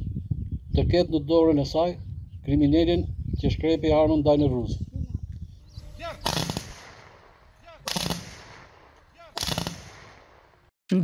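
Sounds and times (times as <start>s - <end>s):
rifle fire volleys: 6.2s - 10.7s.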